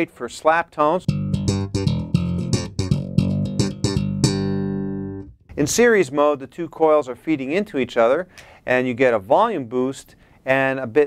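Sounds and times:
slap bass riff: 0:01.1 - 0:05.8.

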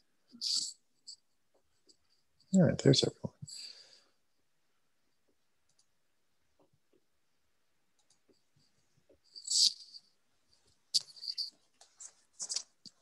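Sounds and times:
faint mouse and keyboard clicks: 0:05.6 - 0:06.0, 0:07.9 - 0:08.5.

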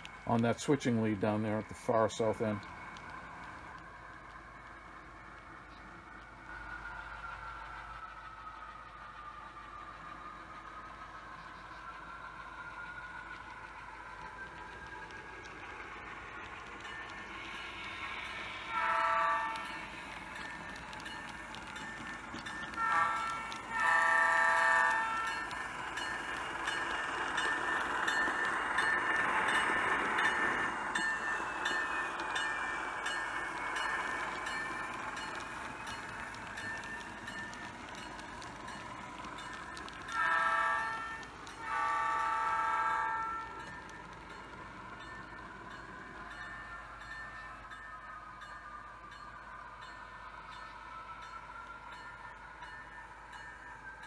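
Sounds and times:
model train rolling on track: 0:00.0 - 0:54.0
model train horn blasts: 0:18.7 - 0:19.7, 0:22.8 - 0:25.3, 0:40.2 - 0:43.5.

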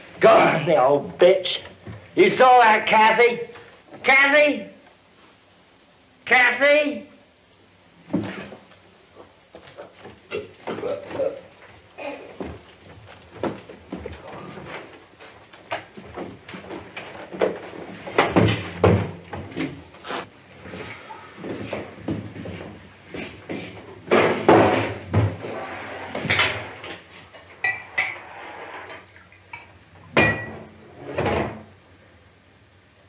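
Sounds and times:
glass clinks: 0:27.6 - 0:28.2, 0:29.5 - 0:30.6
glass bottle knocks and bumps: 0:30.2 - 0:30.7.

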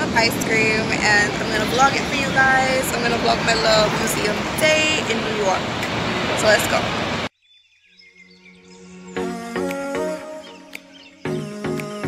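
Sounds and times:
street noise: 0:00.0 - 0:07.3.

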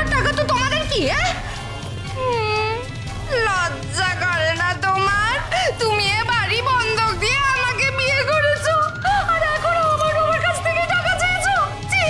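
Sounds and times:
woman wailing a lament: 0:02.2 - 0:02.9.

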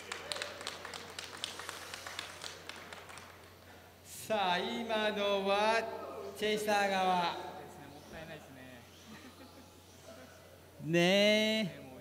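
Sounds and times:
audience hand clapping: 0:00.0 - 0:03.8.

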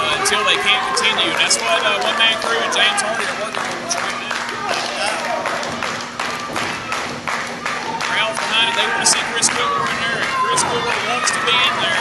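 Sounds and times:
low crowd murmur: 0:00.0 - 0:12.0
slow hand claps: 0:01.0 - 0:12.0.

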